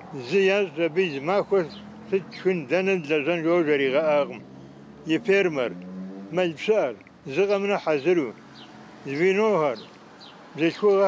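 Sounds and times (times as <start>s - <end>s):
elderly man speaking: 0.0s - 4.4s, 5.1s - 8.4s, 9.0s - 9.9s, 10.6s - 11.0s.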